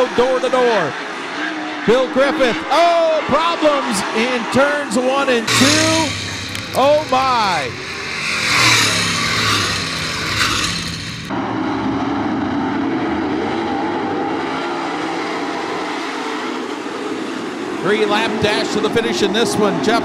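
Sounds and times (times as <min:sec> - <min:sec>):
race car engine passing: 0:00.0 - 0:20.0
race car engines running: 0:00.0 - 0:20.0.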